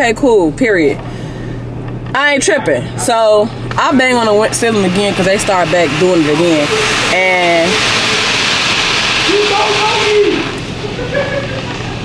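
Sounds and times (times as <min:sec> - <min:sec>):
car wash water spray hiss: 0:03.8 - 0:12.0.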